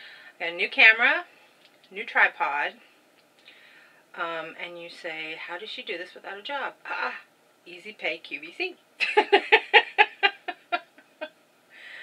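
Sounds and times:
woman laughing: 9.0s - 11.3s.

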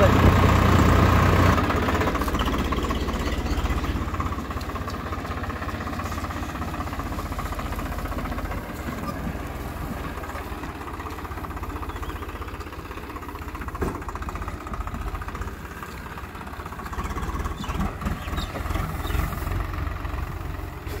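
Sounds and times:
tractor diesel engine running: 0.0s - 21.0s.

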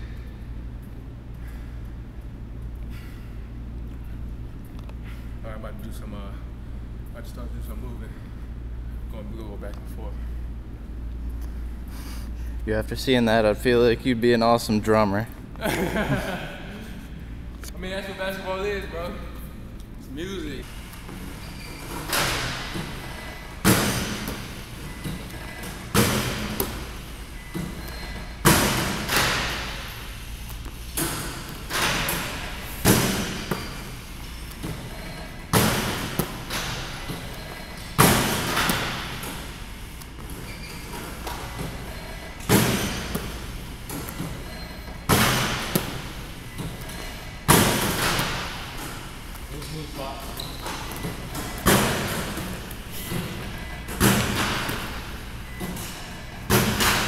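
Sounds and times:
basketballs thudding in gym: 20.8s - 57.0s.

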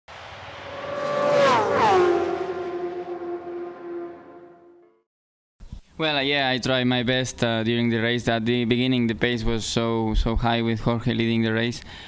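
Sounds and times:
racing motorcycle engine passing by: 0.1s - 4.9s.

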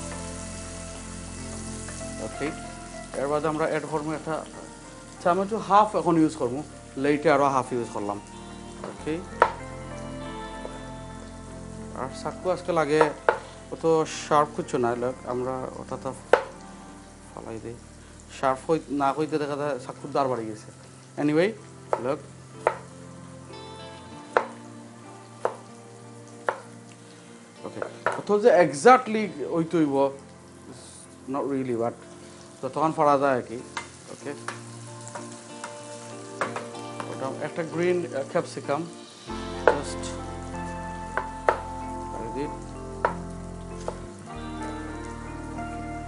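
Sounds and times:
food sizzling in pan: 0.0s - 46.0s.

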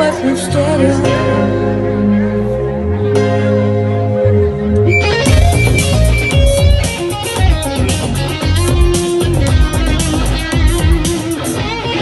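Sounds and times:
bass guitar: 0.0s - 12.0s
electric guitar: 0.0s - 12.0s
steady drum beat: 5.1s - 11.8s.

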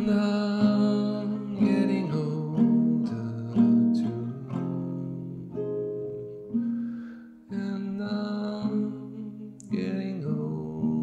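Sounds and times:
acoustic guitar plucked notes: 0.0s - 11.0s.

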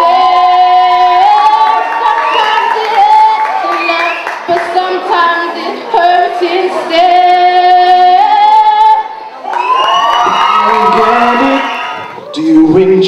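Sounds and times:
woman singing unaccompanied: 0.0s - 9.1s.

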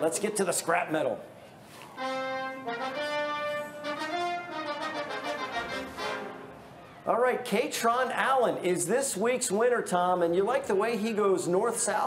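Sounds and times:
brass fanfare sting: 2.0s - 6.7s.

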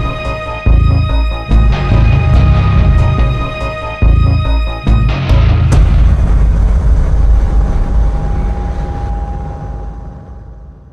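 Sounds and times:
low rumbling boom: 1.5s - 10.9s.

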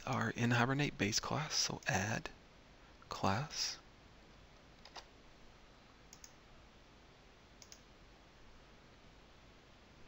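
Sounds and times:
faint computer mouse clicks: 6.1s - 6.4s, 7.6s - 7.9s.

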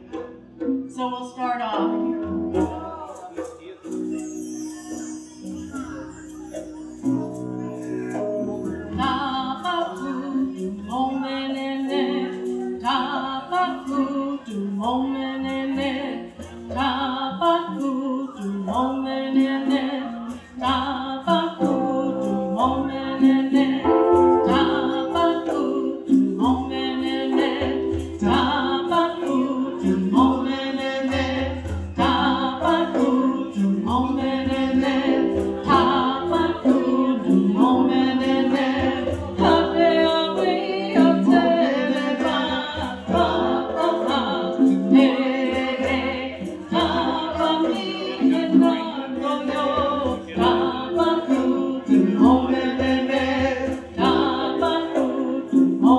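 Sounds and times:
hand drum beat: 1.8s - 4.1s, 5.8s - 14.1s, 14.7s - 55.9s
group of voices singing: 7.8s - 55.9s
woman singing a chant: 24.5s - 55.9s.

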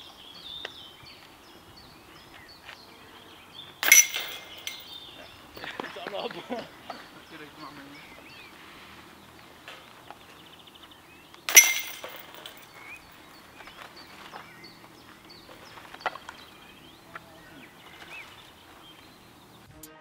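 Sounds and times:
small birds chirping: 0.0s - 19.7s
disc striking metal chains: 3.7s - 5.7s, 11.4s - 13.7s.

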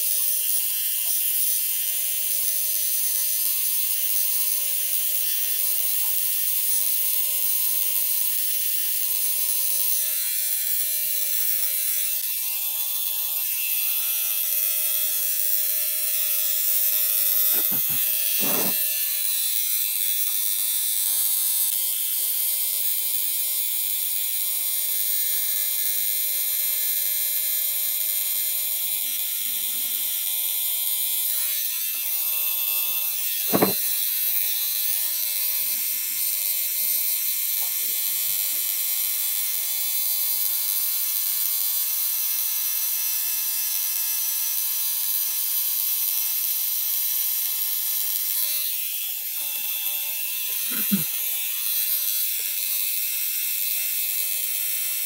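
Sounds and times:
tattoo machine humming: 0.0s - 55.0s.

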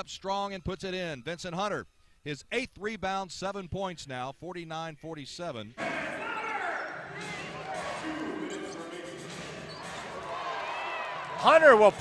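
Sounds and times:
echoing voices of players and crowd: 5.8s - 12.0s
basketball bouncing on court: 7.1s - 8.2s, 9.2s - 10.3s.

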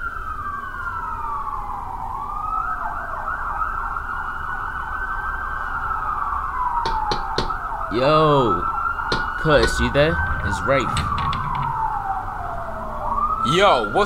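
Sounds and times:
siren wailing: 0.0s - 14.0s
sharp taps: 6.8s - 7.6s, 9.1s - 9.9s
low rumble: 9.2s - 13.4s.

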